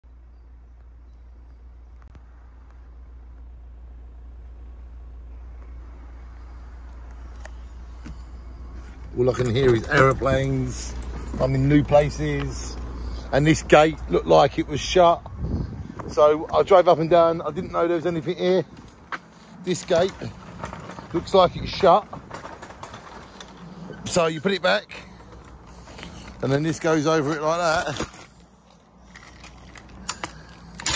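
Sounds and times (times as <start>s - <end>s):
car engine low rumble: 0.0s - 30.9s
metal gate latch and chain rattling: 9.2s - 12.8s, 25.2s - 30.9s.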